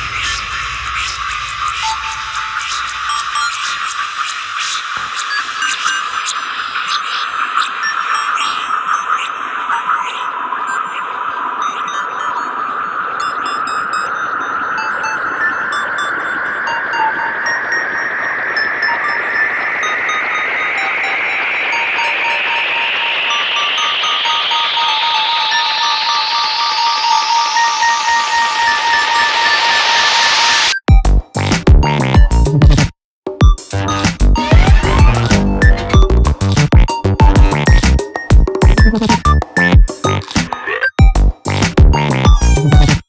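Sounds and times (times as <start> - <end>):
rising hiss: 0.0 - 5.0
electronic music: 0.0 - 43.0
short electronic bleeps: 1.8 - 3.8, 18.6 - 31.1, 33.8 - 41.2.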